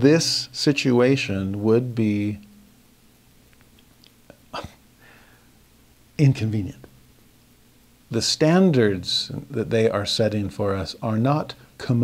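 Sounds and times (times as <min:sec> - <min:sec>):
faint breath: 0:05.0 - 0:05.6
man's sharp breath: 0:05.0 - 0:05.6.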